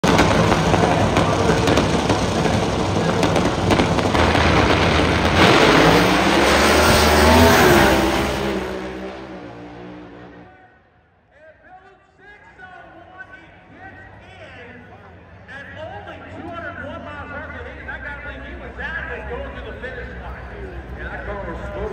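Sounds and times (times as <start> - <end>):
race car engine at full throttle: 0.0 - 10.6.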